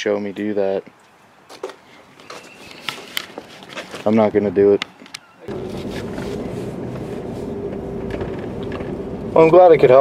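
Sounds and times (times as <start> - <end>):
camera rustling against clothing: 1.5 - 9.0.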